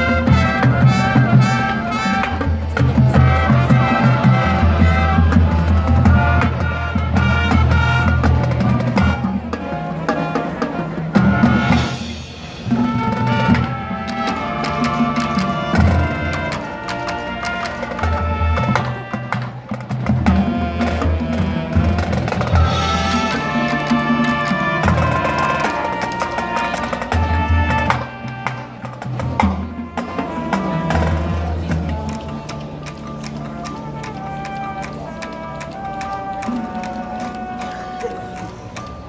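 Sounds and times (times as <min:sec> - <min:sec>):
marching band brass: 0:00.0 - 0:39.0.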